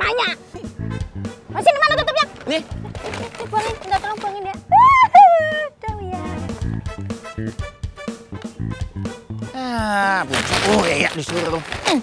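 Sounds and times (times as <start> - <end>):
background music with steady beat: 0.0 - 10.2.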